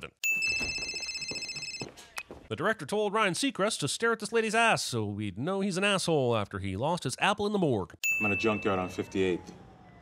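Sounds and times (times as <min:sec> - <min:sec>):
mobile phone ringing: 0:00.2 - 0:02.2, 0:08.0 - 0:09.2.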